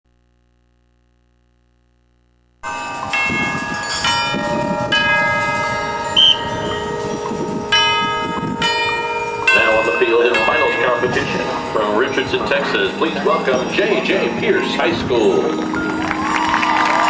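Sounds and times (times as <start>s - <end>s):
ringing bell-like chords: 2.6s - 17.0s.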